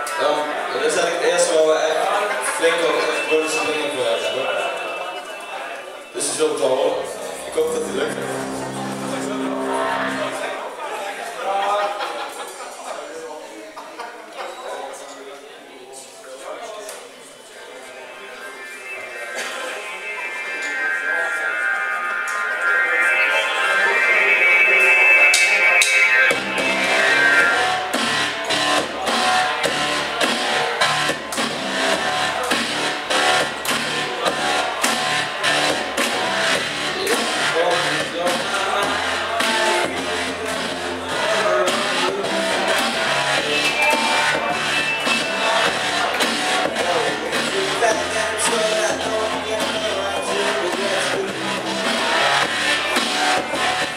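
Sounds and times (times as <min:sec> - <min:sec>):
electric keyboard chord: 0:07.0 - 0:10.6
live rock band playing: 0:07.1 - 0:10.4.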